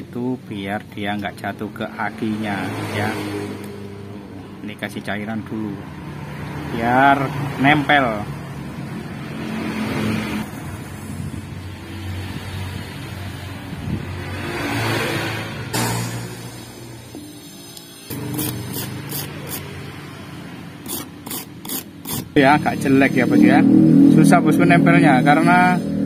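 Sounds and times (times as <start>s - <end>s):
flux hissing on soldering iron: 17.4s - 19.7s, 20.9s - 22.4s.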